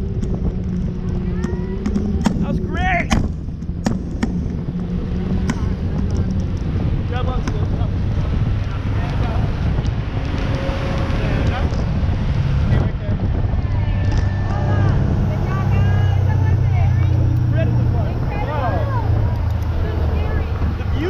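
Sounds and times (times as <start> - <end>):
boat engine humming: 0.0 - 8.4, 11.8 - 21.0
wind buffeting microphone: 0.0 - 21.0
people's voices: 0.6 - 3.2, 5.3 - 21.0.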